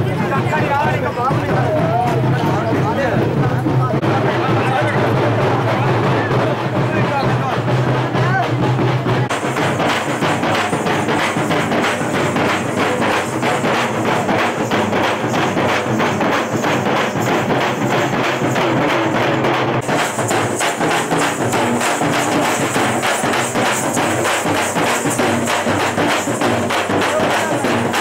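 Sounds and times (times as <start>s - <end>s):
bass drums beating: 0.0s - 28.0s
side drums beaten with sticks: 0.0s - 28.0s
street drum band: 0.0s - 28.0s.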